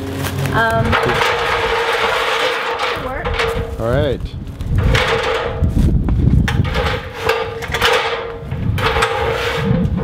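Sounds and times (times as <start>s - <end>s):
metal ladder scraping and clanking: 0.6s - 10.0s.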